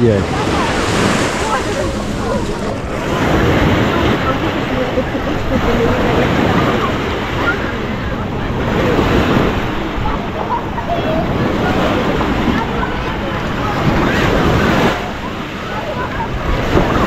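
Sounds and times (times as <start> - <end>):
chatter of bathers: 0.0 - 17.0
wind on microphone: 0.0 - 17.0.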